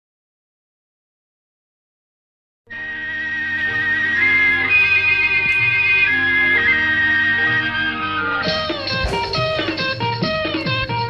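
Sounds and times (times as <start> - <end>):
low sustained accompaniment: 2.7 - 10.2
high held melodic note: 2.7 - 10.3.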